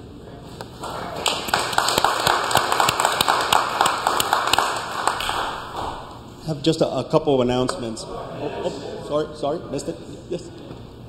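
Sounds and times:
crowd applauding: 0.8s - 6.3s.

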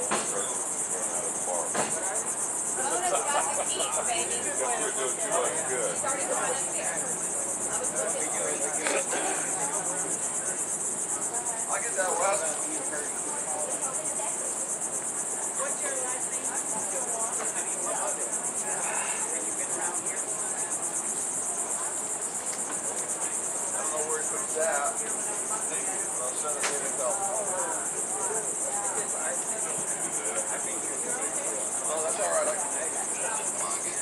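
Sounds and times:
faint voices: 0.0s - 34.0s
insects buzzing: 0.0s - 34.0s.

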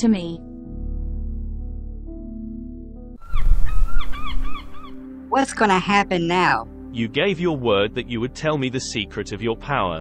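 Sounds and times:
birds calling: 3.2s - 5.9s.

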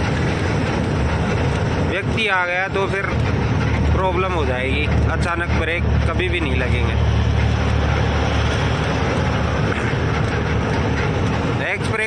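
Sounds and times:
truck diesel engine drone: 0.0s - 12.0s
tyre and road noise: 0.0s - 12.0s.

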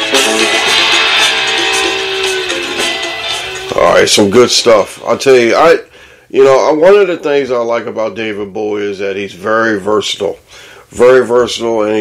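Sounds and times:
rock music with guitar: 0.0s - 4.1s.

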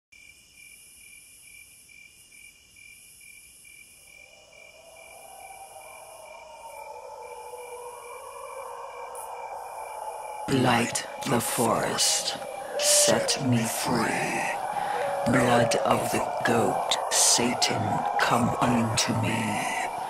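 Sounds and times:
insect-like chirping: 0.2s - 20.0s
low drone: 4.2s - 20.0s.

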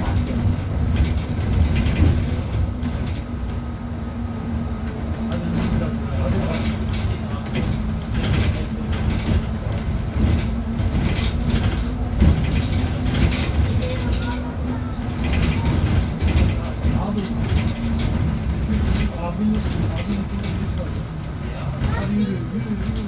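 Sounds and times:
cabin rattles and knocks: 0.0s - 3.3s, 5.6s - 21.0s
bus engine drone: 0.0s - 23.0s
road noise: 0.0s - 23.0s.

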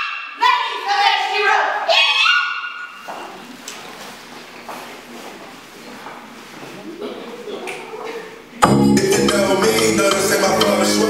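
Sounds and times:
low murmur of hall: 0.4s - 11.0s.

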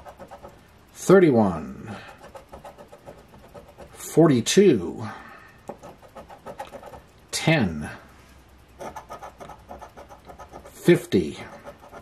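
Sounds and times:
plastic tool scraping lottery ticket: 5.7s - 7.0s, 8.8s - 12.0s.

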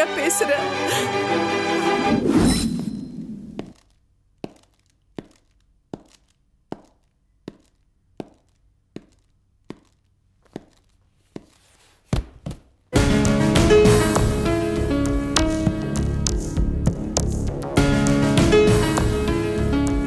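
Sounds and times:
footsteps on hard floor: 3.5s - 12.8s.

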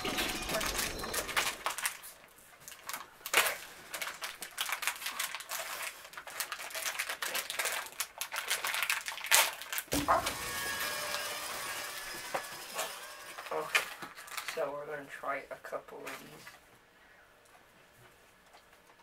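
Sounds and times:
plastic candy wrapper crinkling: 0.0s - 10.4s, 12.8s - 14.8s.

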